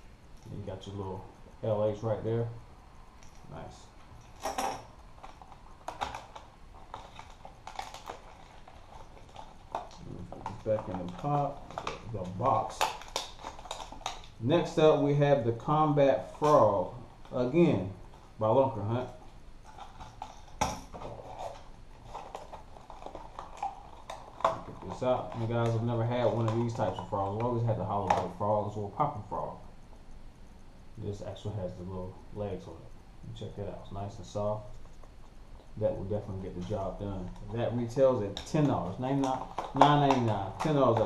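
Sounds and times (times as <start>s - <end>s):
clicks and rustles of packaging: 3.2s - 14.4s, 19.6s - 28.4s, 34.3s - 41.0s.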